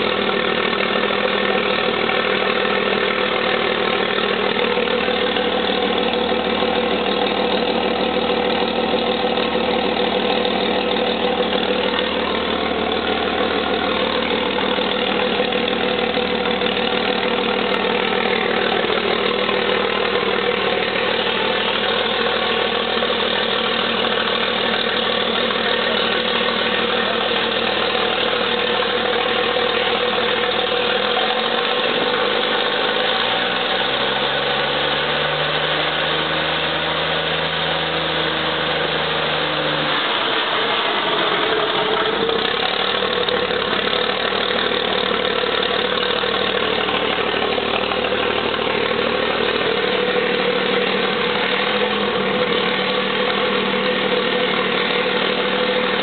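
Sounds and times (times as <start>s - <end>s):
gas engine running: 0.0s - 56.0s.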